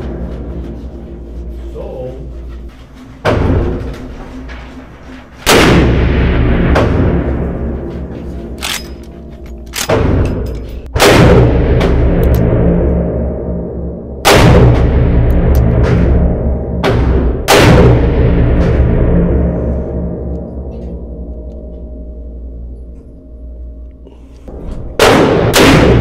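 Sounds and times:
loud gunshots echoing indoors: 0:05.4 - 0:20.3, 0:24.8 - 0:26.0.

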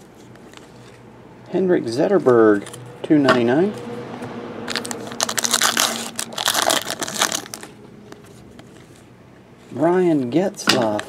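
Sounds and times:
foil wrapper crinkling and tearing: 0:04.7 - 0:09.0.

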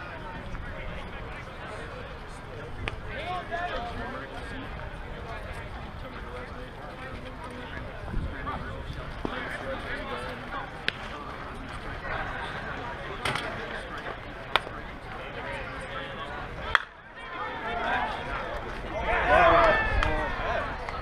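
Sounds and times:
background chatter of voices: 0:00.0 - 0:21.0.

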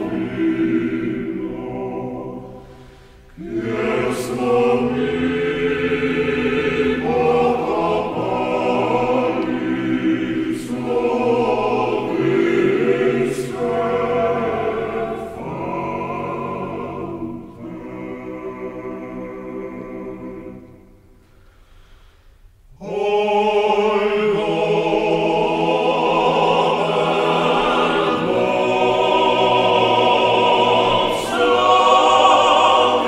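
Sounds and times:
male choir singing a cappella: 0:00.0 - 0:21.1, 0:22.8 - 0:33.0.

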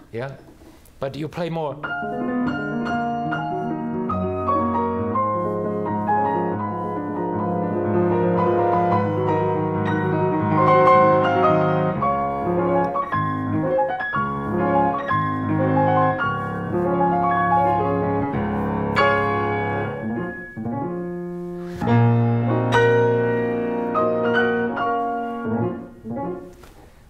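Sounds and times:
grand piano classical passage: 0:01.5 - 0:27.0.

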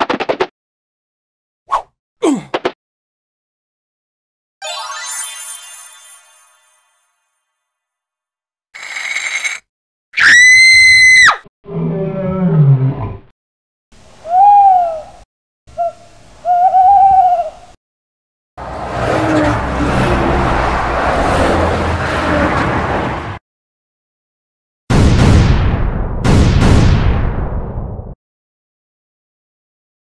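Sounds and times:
toy truck rumbling: 0:08.8 - 0:09.7
cartoon squeal: 0:10.2 - 0:11.4
growling roar falling in pitch: 0:11.6 - 0:13.3.

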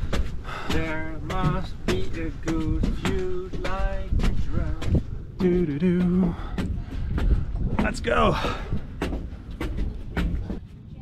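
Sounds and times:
footsteps on steel stairs: 0:00.0 - 0:11.0.

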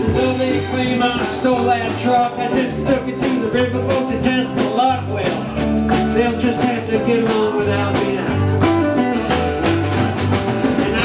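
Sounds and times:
acoustic and electric guitars: 0:00.0 - 0:11.0
drum kit beat: 0:00.0 - 0:11.0.

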